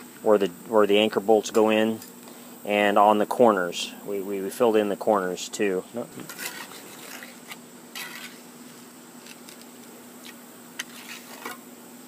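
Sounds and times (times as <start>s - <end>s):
faint steady hum: 0.0s - 12.0s
trowel scraping concrete: 6.2s - 8.5s, 9.5s - 11.6s.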